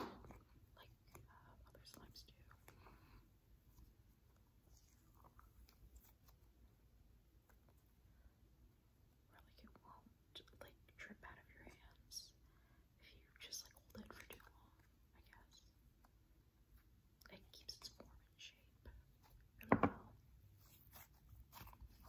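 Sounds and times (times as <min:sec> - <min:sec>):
close-up whispering: 0:00.0 - 0:03.3, 0:09.2 - 0:16.1, 0:17.2 - 0:20.7.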